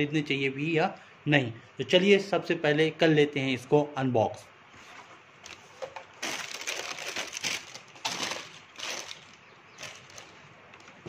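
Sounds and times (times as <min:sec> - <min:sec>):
tissue paper crinkling: 0:04.8 - 0:11.0.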